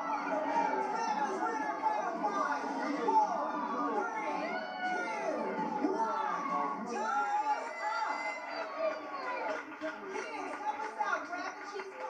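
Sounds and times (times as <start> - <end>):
high yells: 0.0 - 9.6
audience shouting and cheering: 0.0 - 11.2.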